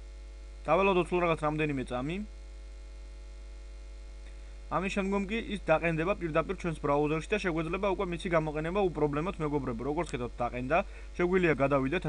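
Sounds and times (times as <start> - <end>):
electrical mains hum: 0.0 - 12.0
man speaking: 0.7 - 2.3, 4.7 - 12.0.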